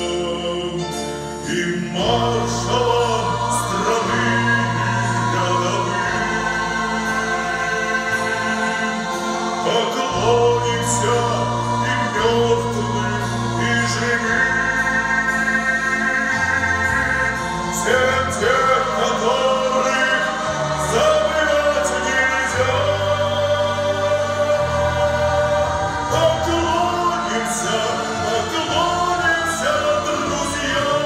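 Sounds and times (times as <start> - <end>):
choir singing: 0.0 - 31.0
instrumental accompaniment with bass: 0.0 - 31.0
man singing solo: 9.6 - 25.1, 26.1 - 31.0.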